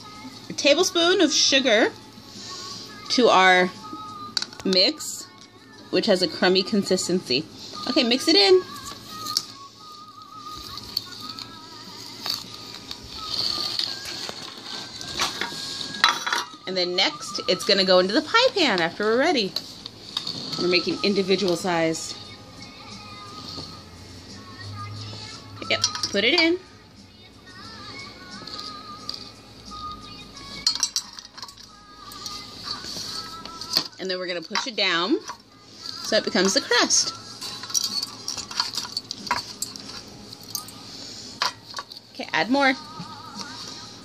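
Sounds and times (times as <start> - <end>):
faint music: 0.0 - 44.0.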